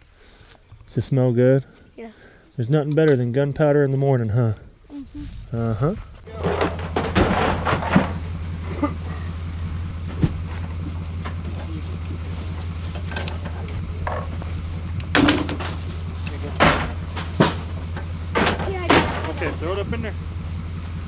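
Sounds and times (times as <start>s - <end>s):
engine idling: 4.3s - 21.0s
plastic decoys knocking and rustling: 6.2s - 8.6s, 10.0s - 19.6s.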